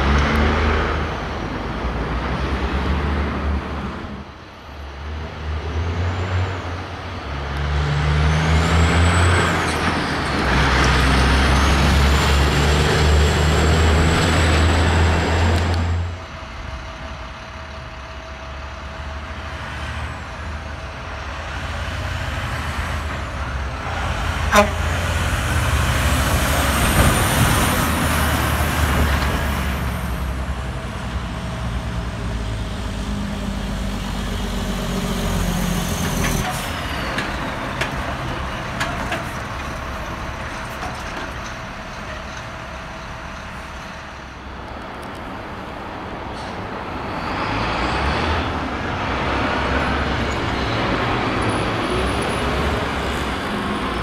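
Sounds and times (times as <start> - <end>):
diesel truck engines: 0.0 - 54.0.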